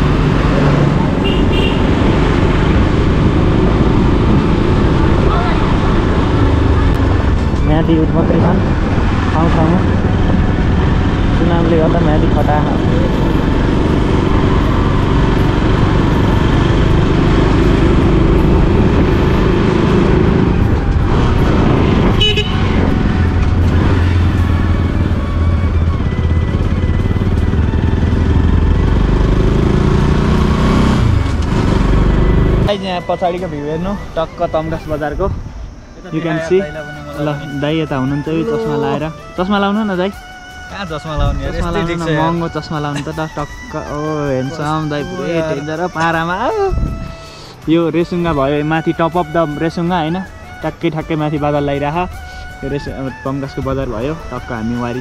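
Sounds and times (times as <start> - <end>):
motorcycle engine running: 0.0 - 32.8
road noise: 0.0 - 55.0.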